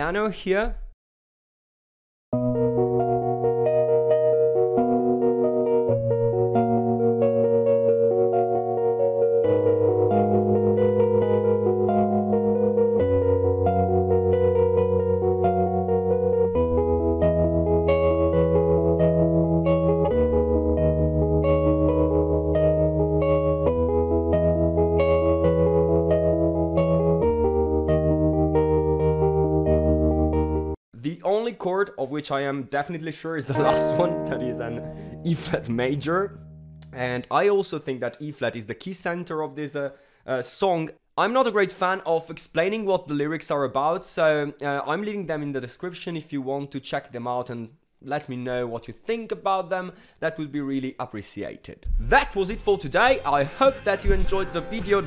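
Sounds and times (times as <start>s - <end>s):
piano arpeggios: 2.4s - 30.8s, 33.6s - 36.8s.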